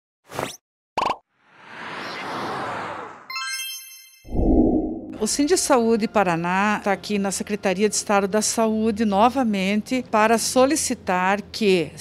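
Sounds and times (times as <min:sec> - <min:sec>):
whoosh: 0:04.3 - 0:05.3.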